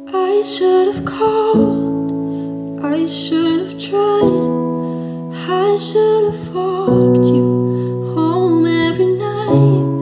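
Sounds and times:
woman singing: 0:00.0 - 0:02.2, 0:02.8 - 0:10.0
piano chords: 0:00.0 - 0:10.0.

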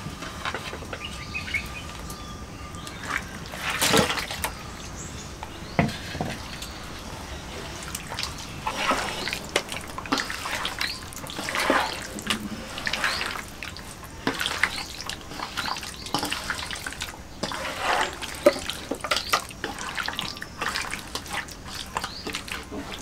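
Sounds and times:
wet squishing of hand mixing: 0:06.0 - 0:23.0.

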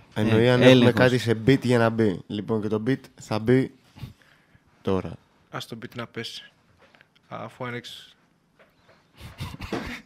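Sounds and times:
person coughing or breathing: 0:09.4 - 0:10.0.

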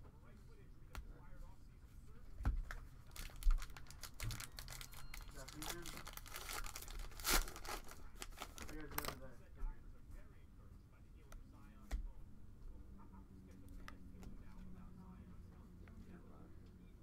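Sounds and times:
plastic wrapper crinkling and tearing: 0:03.1 - 0:09.2.

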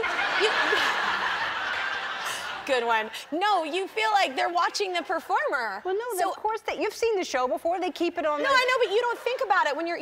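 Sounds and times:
audience laughing: 0:00.0 - 0:05.3.

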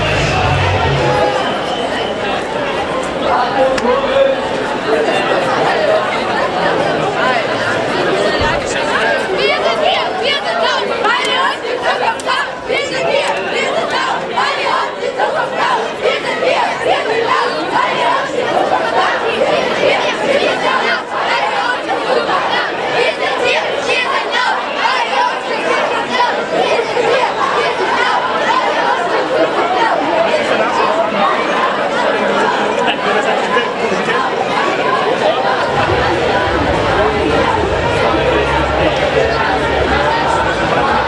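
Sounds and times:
crowd chattering: 0:00.0 - 0:41.0.

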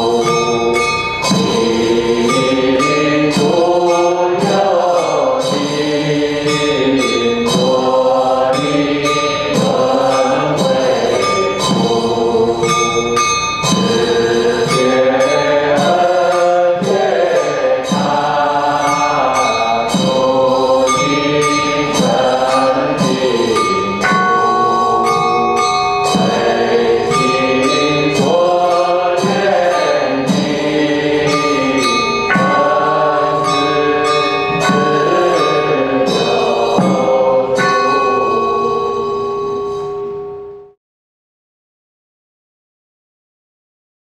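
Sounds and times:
voices chanting a mantra: 0:00.0 - 0:39.6
struck bell ringing: 0:00.0 - 0:40.8.

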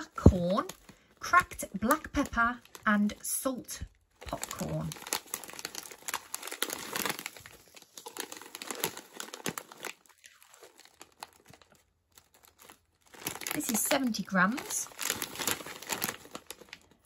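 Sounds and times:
plastic bag crinkling: 0:00.0 - 0:17.0.

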